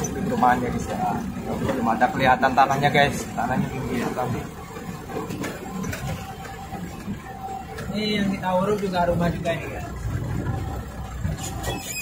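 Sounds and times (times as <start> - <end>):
truck cab rattling: 0.0 - 12.0
truck engine rumbling: 0.0 - 12.0.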